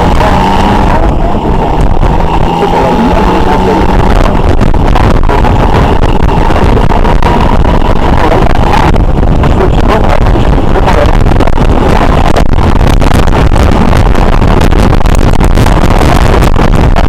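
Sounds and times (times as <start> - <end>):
motorcycle engine: 0.0 - 17.0
wind noise: 0.0 - 17.0.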